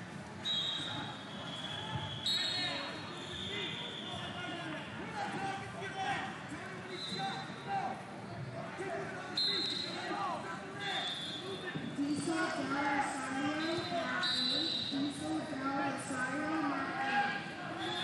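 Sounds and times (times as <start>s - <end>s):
coaches and spectators calling out: 0.4s - 18.0s.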